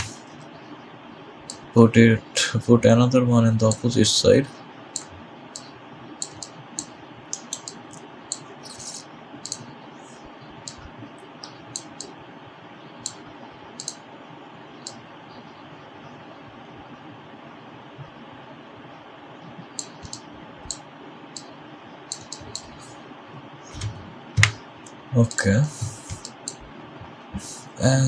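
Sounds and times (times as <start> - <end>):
microphone hiss: 0.0 - 28.0
mouse and keyboard clicks: 5.0 - 9.6.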